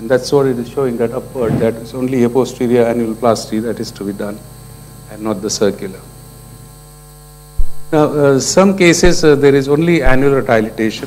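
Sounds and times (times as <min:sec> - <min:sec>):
electrical mains hum: 0:00.0 - 0:11.0
short low thump: 0:01.4 - 0:02.0.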